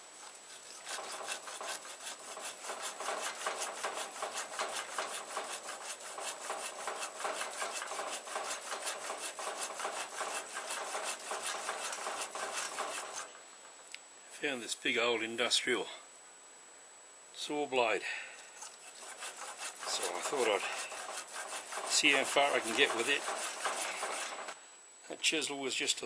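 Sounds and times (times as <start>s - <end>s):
hand tool rasping: 0.2s - 13.3s, 18.6s - 24.6s.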